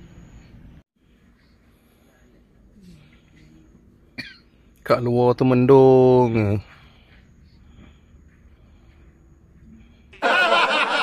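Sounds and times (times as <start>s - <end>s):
person coughing: 4.2s - 4.4s
man speaking: 4.9s - 6.7s.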